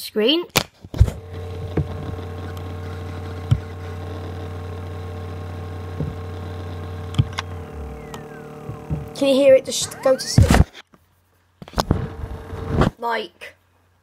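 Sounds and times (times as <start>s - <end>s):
falling whine of drive spinning down: 1.0s - 10.7s, 11.7s - 12.9s
hard drive clicks: 1.0s - 10.7s, 11.6s - 12.9s
hard drive humming: 1.0s - 10.7s, 11.7s - 12.9s.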